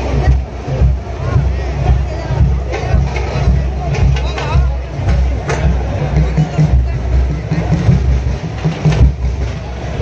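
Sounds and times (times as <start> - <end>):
dense crowd noise: 0.0 - 10.0
festival drumming: 0.0 - 10.0.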